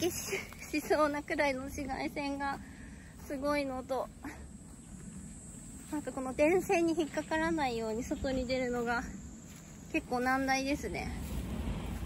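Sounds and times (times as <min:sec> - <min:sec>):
woman speaking: 0:00.0 - 0:02.6, 0:03.2 - 0:04.4, 0:05.9 - 0:09.2, 0:09.9 - 0:11.3
faint low rumble: 0:00.0 - 0:12.0.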